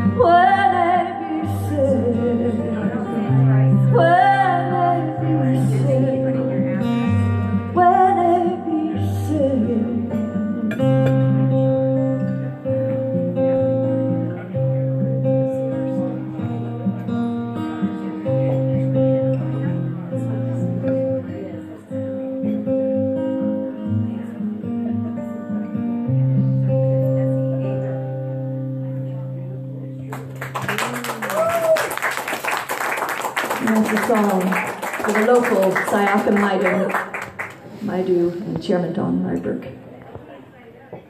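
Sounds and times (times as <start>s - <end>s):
acoustic guitar strumming chords: 0.0s - 30.6s.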